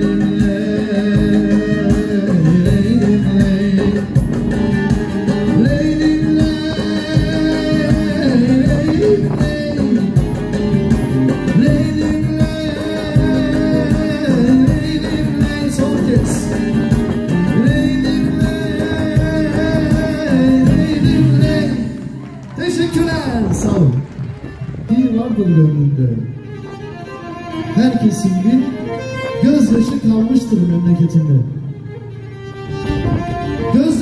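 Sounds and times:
man singing: 0.0s - 23.0s, 33.6s - 34.0s
keyboard: 0.0s - 34.0s
live band music: 0.0s - 34.0s.

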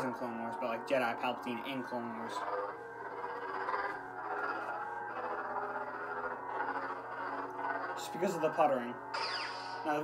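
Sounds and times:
buzzing electronic lightsaber hum: 0.0s - 10.0s.

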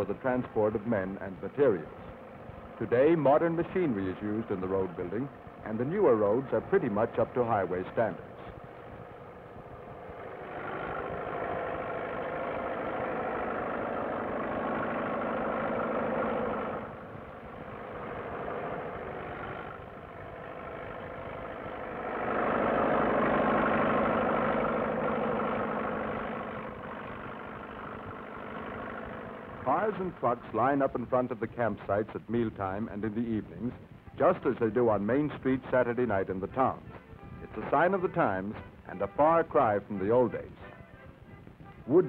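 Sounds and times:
bulldozer engine under load: 0.0s - 42.0s
dump truck engine: 0.0s - 42.0s.

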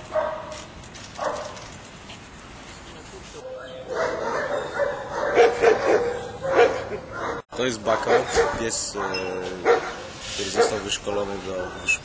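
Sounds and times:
dog whining and yipping: 3.4s - 7.4s.

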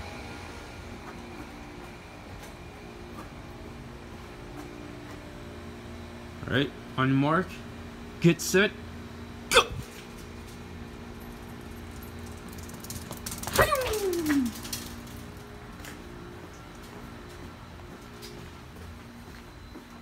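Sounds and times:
air-conditioning hum: 0.0s - 20.0s.

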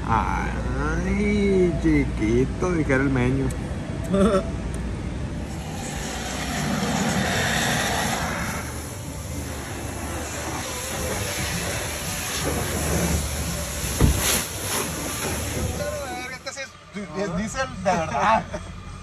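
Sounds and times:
water spraying from a hose: 5.4s - 16.4s.

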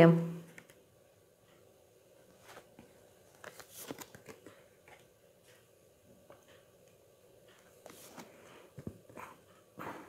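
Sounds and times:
cards rustling and sliding: 2.4s - 5.0s, 7.8s - 9.4s.

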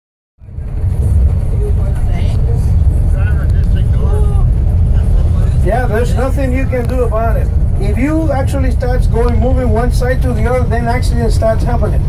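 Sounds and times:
car driving rumble: 0.4s - 12.0s.

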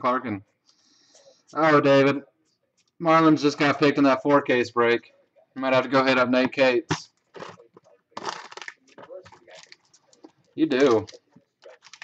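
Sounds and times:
foil wrapper crinkling: 8.2s - 12.0s.

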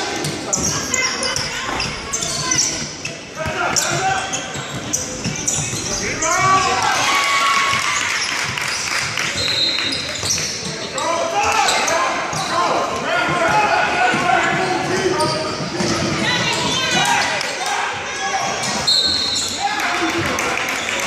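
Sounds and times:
shoe squeak: 0.2s - 6.8s, 9.3s - 12.6s, 14.4s - 17.3s, 18.6s - 19.6s
players and spectators shouting: 5.8s - 8.4s, 11.0s - 20.4s.

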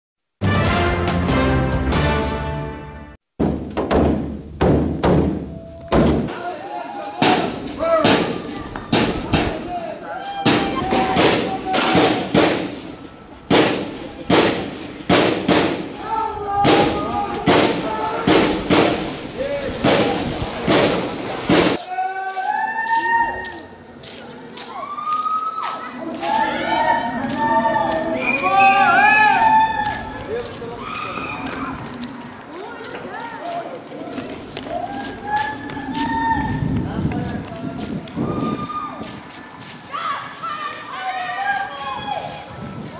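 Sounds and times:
loud thuds: 3.4s - 6.3s.

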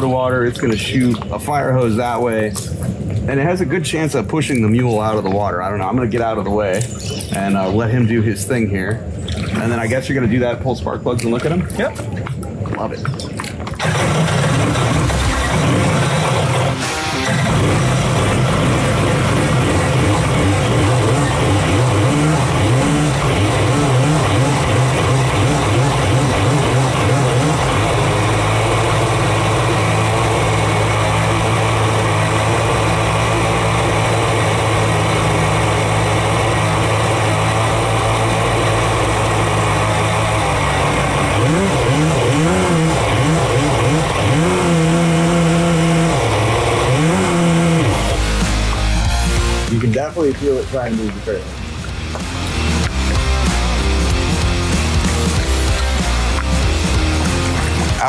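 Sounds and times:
jet ski engine running hard: 0.0s - 10.6s, 13.4s - 58.0s.

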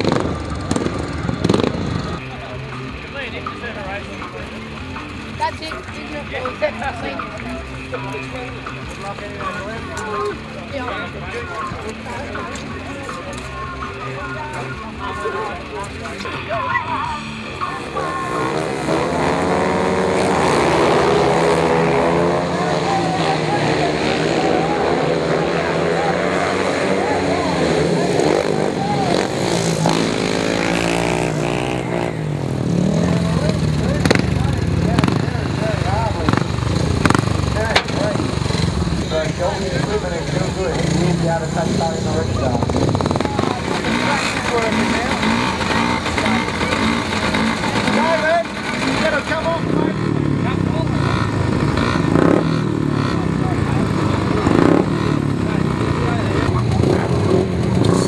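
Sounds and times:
racing motorcycle engines: 0.0s - 58.0s.

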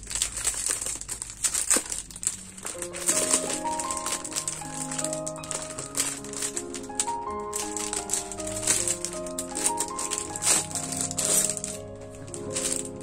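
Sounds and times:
plastic wrapping crackling: 0.0s - 13.0s
light melody: 2.5s - 13.0s.

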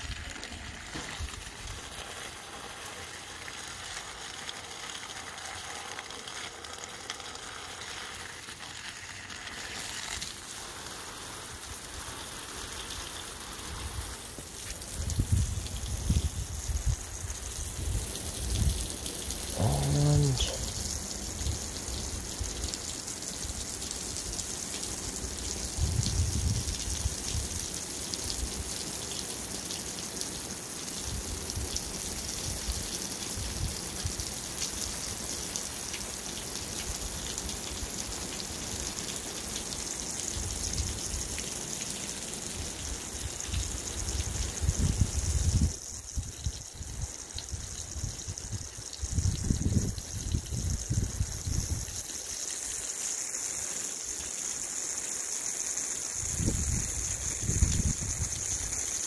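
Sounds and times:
water spraying onto soil: 0.0s - 59.0s.

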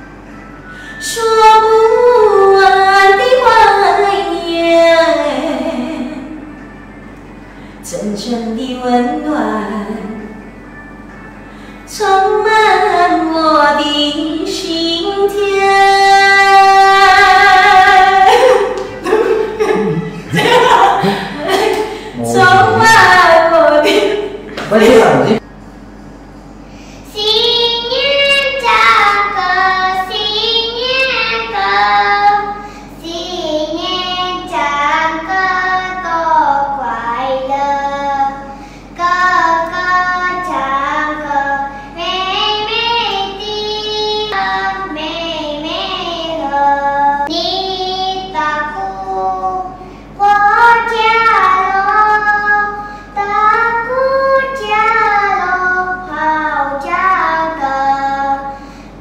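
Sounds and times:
girl singing: 1.0s - 6.5s, 11.9s - 19.6s, 21.0s - 23.9s, 27.1s - 58.6s.

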